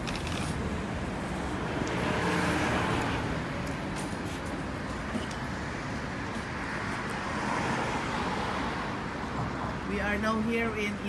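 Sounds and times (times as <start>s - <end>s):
road traffic noise: 0.0s - 11.0s.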